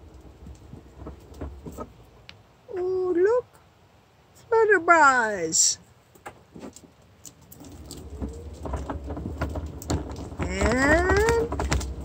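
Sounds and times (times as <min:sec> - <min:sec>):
wheelchair wheels rumbling: 0:00.0 - 0:02.5, 0:06.2 - 0:12.0
grit crackling under wheels: 0:00.0 - 0:02.7, 0:05.9 - 0:12.0.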